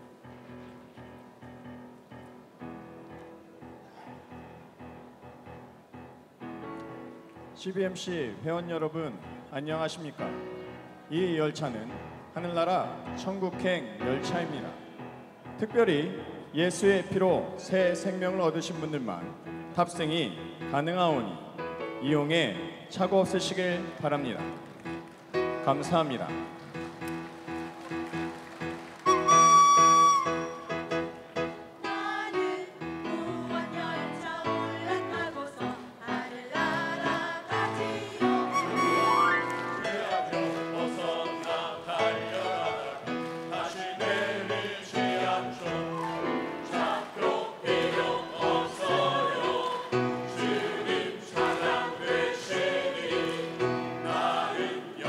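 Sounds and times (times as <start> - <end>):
whistle high note: 29.1 - 30.8, 38.5 - 39.9
mixed choir singing gospel: 31.8 - 55.0.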